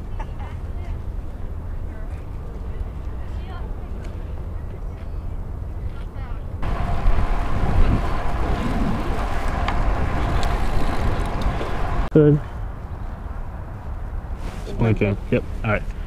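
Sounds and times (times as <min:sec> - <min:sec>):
wind rushing over microphone: 0:06.5 - 0:15.7.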